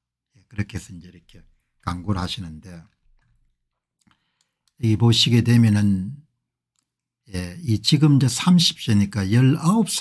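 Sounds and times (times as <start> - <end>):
man speaking: 0.4 - 3.0, 4.8 - 6.3, 7.2 - 10.0.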